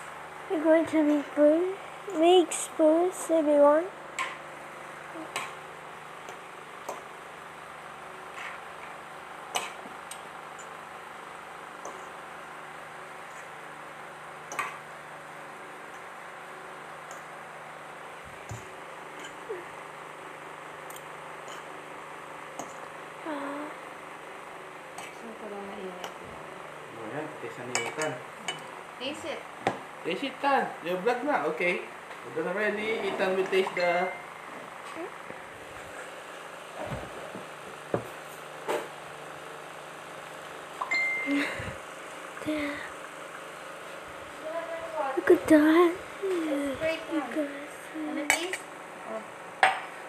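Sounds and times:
utensils clinking on ceramic plate: 27.7s - 28.7s.

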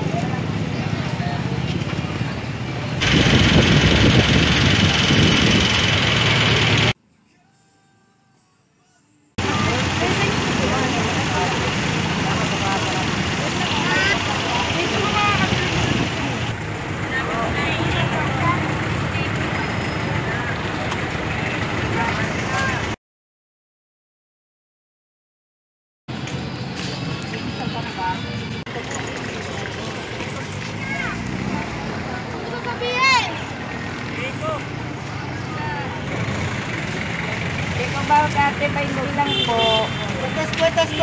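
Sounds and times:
voices chattering: 0.0s - 6.9s, 9.4s - 23.0s, 26.2s - 41.0s
vehicle engines idling: 0.0s - 7.0s, 9.4s - 23.0s, 26.2s - 41.0s
traffic: 0.0s - 7.2s, 9.4s - 23.0s, 26.1s - 41.0s.

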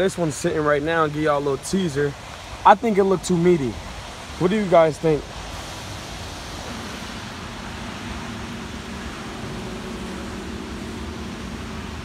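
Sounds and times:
low mechanical hum: 0.0s - 12.0s
rain on wet pavement: 0.0s - 12.0s.

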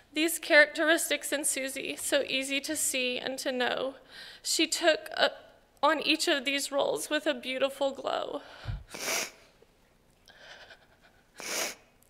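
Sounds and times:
faint breath noise: 8.4s - 9.6s, 10.3s - 11.9s
woman's quick breath in: 8.5s - 9.4s.

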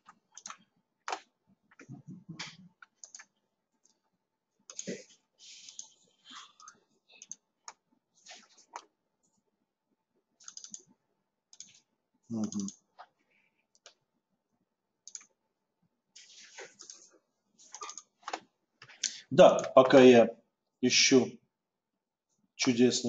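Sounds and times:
computer keyboard clicking: 0.0s - 4.0s, 4.7s - 5.0s, 6.6s - 7.8s, 10.4s - 10.9s, 11.6s - 11.8s, 12.4s - 12.8s, 15.0s - 15.3s, 17.7s - 18.4s
mouse clicking: 0.4s - 1.3s, 2.4s - 4.0s, 4.7s - 5.0s, 6.6s - 7.8s, 10.4s - 10.9s, 11.5s - 11.8s, 13.7s - 14.0s, 15.0s - 15.3s, 17.7s - 18.4s
person murmuring: 12.3s - 12.7s.

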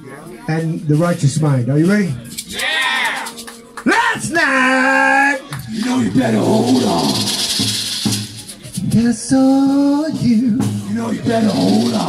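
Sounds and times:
maracas shaken in rhythm: 2.1s - 4.4s, 5.5s - 12.0s
low male voices singing: 4.9s - 7.6s, 8.8s - 12.0s.

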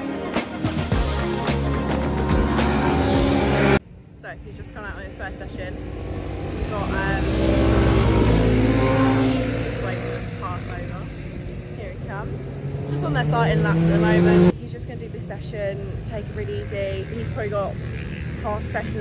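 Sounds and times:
racing motorcycles passing: 0.0s - 19.0s.

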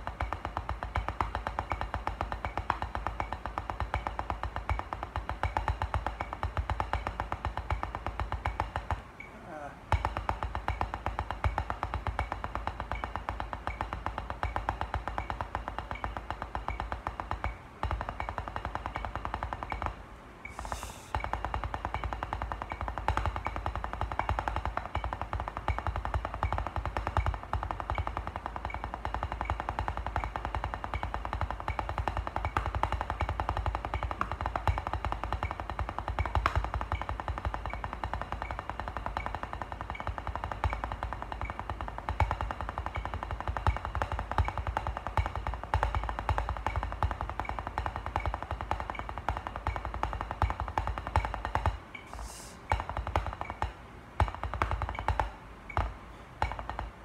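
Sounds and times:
drumsticks on practice pad: 0.0s - 57.0s.

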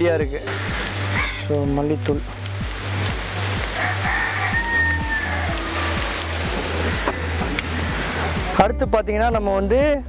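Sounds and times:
music with steady beat: 0.0s - 10.0s
onions sizzling in pot: 2.2s - 8.6s
rooster crowing: 3.6s - 8.3s.

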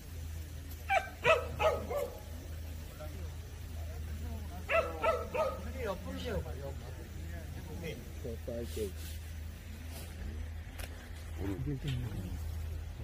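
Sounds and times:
dog barking: 0.9s - 2.3s, 4.7s - 5.8s.

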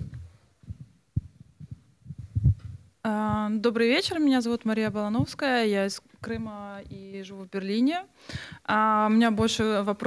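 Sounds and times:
microphone handling knocks: 0.0s - 5.5s, 6.2s - 7.1s.

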